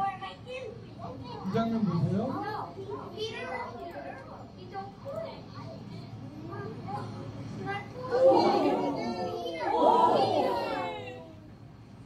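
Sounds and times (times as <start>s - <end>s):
children shouting over speakers: 8.1s - 11.2s.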